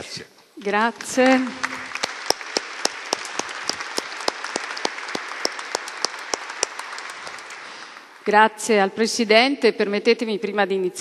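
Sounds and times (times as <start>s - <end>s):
audience applauding: 0.6s - 8.4s.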